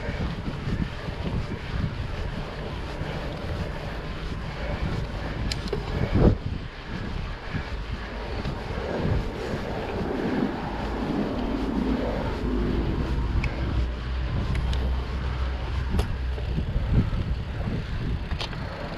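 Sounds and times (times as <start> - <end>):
tyres rolling on asphalt: 0.0 - 18.9
wind on microphone: 0.0 - 18.9
bike clicks and knocks: 5.4 - 6.1, 14.4 - 14.9, 15.9 - 17.4, 18.2 - 18.9.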